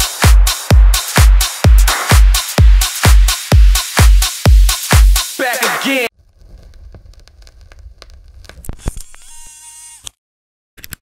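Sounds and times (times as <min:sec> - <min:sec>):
crackling noise: 0:06.1 - 0:09.5.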